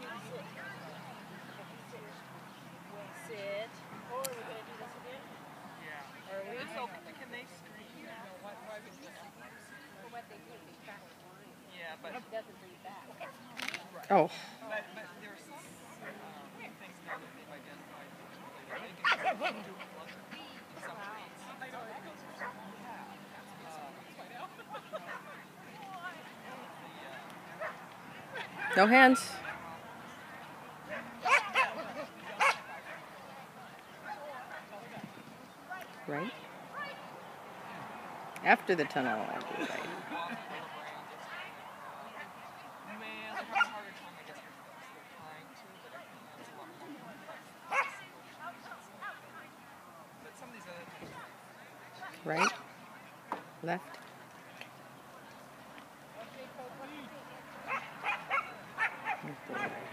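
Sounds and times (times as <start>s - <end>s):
small dog barking: 30.9s - 31.8s, 32.4s - 33.0s, 43.4s - 43.8s, 47.7s - 48.0s, 52.3s - 52.6s, 57.7s - 59.8s.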